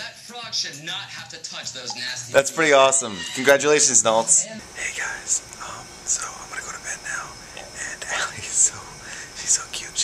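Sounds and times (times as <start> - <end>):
man whispering: 4.6 - 10.0.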